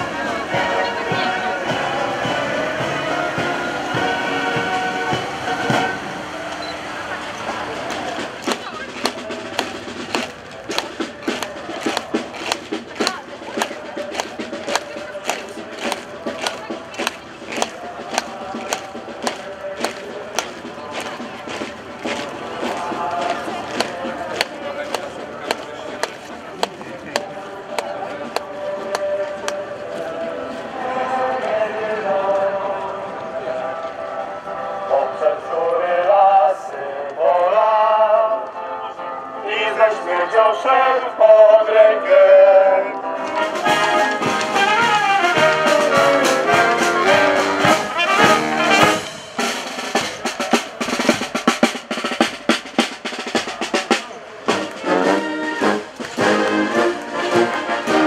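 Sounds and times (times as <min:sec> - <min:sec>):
procession music or singing: 0:00.0 - 0:58.0
boots marching on stone: 0:07.8 - 0:30.2.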